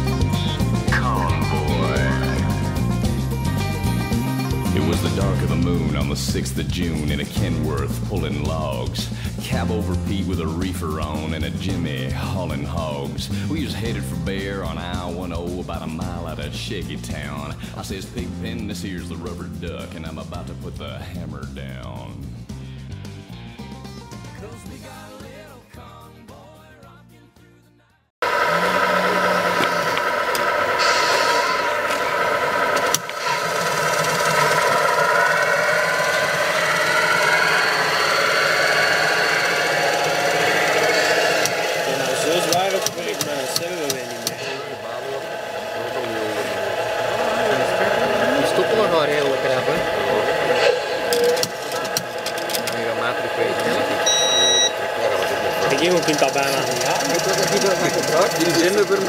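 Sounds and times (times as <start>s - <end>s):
simulated engine sound: 0.0s - 22.1s, 28.2s - 59.0s
people talking: 0.8s - 2.7s, 4.7s - 22.2s, 28.4s - 30.1s, 41.8s - 51.8s, 52.5s - 59.0s.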